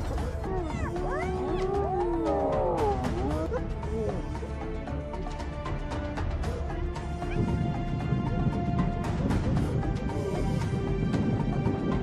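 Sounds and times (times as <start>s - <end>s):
hyenas calling: 0.0s - 4.7s.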